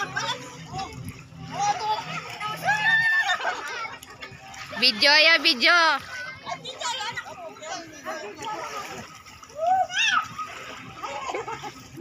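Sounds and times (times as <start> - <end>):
swimmers splashing in water: 0.0 - 12.0.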